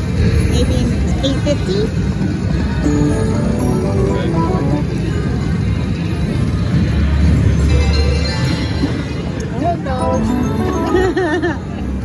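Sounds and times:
slot machine music: 2.8s - 5.6s, 7.5s - 12.0s.

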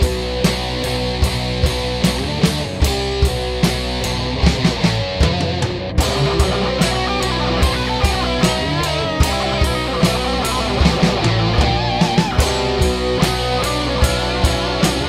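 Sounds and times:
doom metal song: 0.0s - 15.0s
wavering lead guitar melody: 0.0s - 15.0s.

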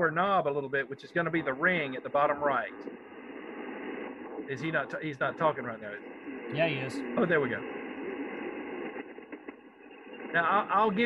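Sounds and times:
man's voice: 0.0s - 2.7s, 4.5s - 7.6s, 10.4s - 11.0s
radio static hiss: 0.0s - 11.0s.

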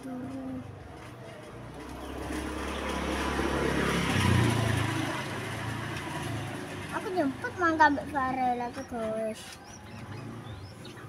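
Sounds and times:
vehicle engine passing by: 1.0s - 11.0s.

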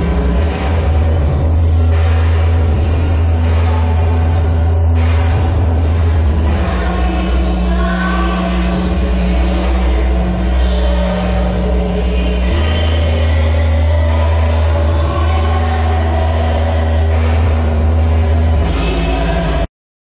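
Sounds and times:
heavy bass drone: 0.0s - 19.7s
wall of distorted noise: 0.0s - 19.7s.

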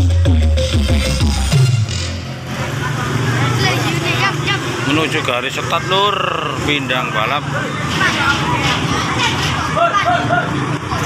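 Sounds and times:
electronic dance music with heavy bass: 0.0s - 2.4s
voices: 2.4s - 11.0s.

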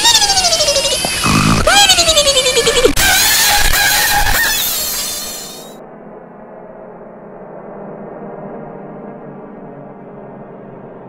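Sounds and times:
harsh distorted wail: 0.0s - 5.8s
low steady drone: 0.0s - 11.0s.

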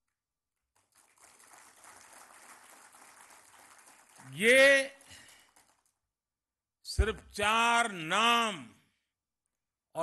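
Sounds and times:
audience applause: 0.8s - 6.0s.

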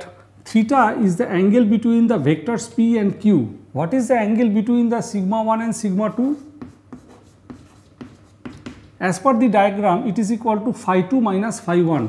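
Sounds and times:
chalk scratching on chalkboard: 6.1s - 8.9s.

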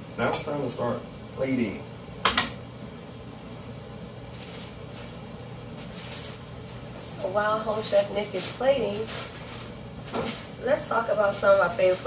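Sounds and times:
steady low hum: 0.0s - 12.0s
soft rustling: 4.3s - 12.0s.

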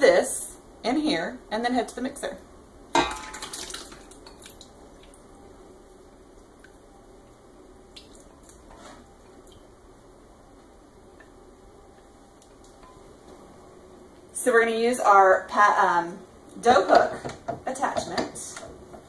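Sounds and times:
batter squishing and dripping: 7.9s - 8.7s.

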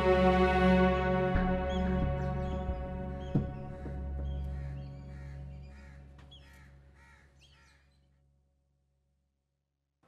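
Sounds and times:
quiet background music: 0.0s - 7.6s
crow cawing: 3.6s - 8.2s.

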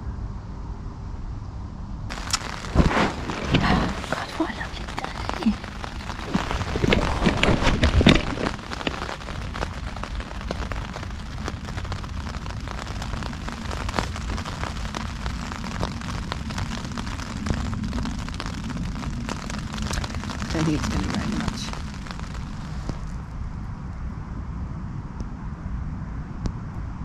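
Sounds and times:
rustles and knocks: 2.1s - 10.7s
rain pattering on tent: 2.1s - 23.6s.

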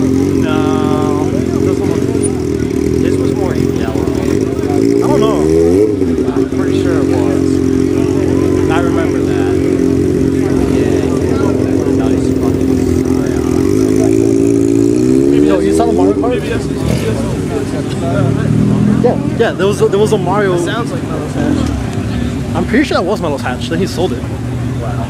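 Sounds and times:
car engine revving: 0.0s - 25.0s.

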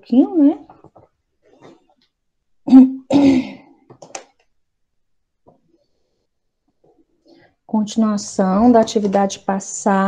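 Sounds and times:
person clearing throat: 2.7s - 3.7s.

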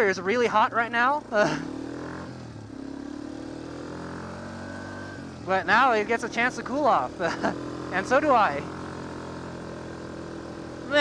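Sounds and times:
quad bike engine running: 0.0s - 11.0s.

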